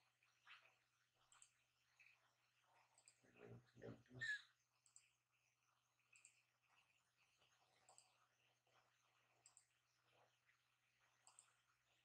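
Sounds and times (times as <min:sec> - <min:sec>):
faint low hum: 0:00.0 - 0:12.0
computer mouse clicks: 0:00.5 - 0:02.1, 0:02.8 - 0:03.2, 0:04.8 - 0:05.2, 0:06.1 - 0:06.5, 0:07.7 - 0:08.3, 0:09.3 - 0:09.8, 0:11.2 - 0:11.7.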